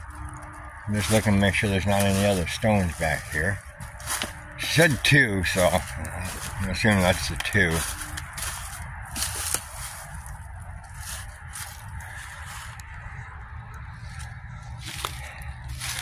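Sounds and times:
footsteps through dry leaves: 0.0s - 13.3s, 13.9s - 16.0s
wind rumble on microphone: 0.0s - 16.0s.

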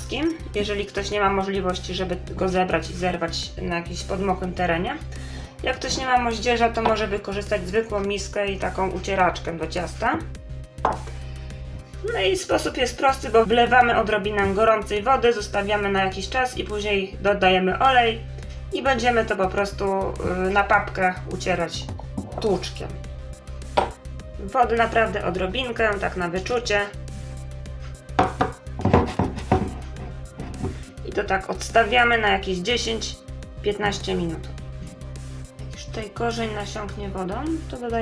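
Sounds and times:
background music: 0.0s - 38.0s
wooden pestle knocking in mortar: 10.8s - 11.1s, 23.7s - 24.0s, 28.1s - 30.8s.

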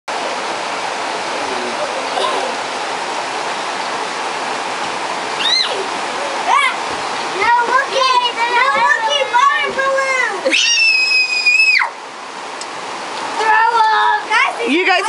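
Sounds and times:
running water rushing: 0.1s - 15.0s
children's voices: 5.4s - 10.9s, 13.3s - 15.0s.

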